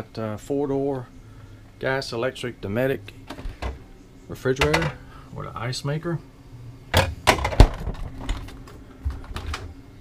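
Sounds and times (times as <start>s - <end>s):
plastic drawer clattering shut: 7.0s - 8.4s.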